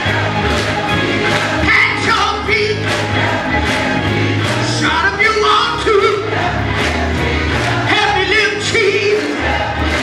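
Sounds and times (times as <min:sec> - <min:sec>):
gospel choir singing: 0:00.0 - 0:10.0
organ bass notes: 0:00.0 - 0:10.0.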